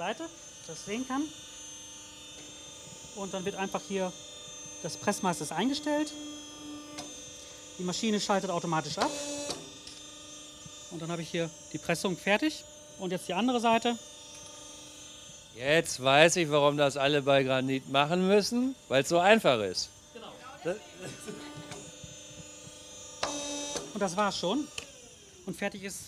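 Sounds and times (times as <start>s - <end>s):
crimping machine humming: 0.0s - 25.7s.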